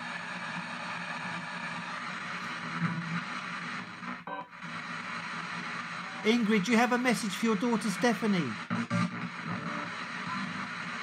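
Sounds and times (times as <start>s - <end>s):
radio static hiss: 0.0s - 11.0s
chopped radio audio fragments: 2.5s - 11.0s.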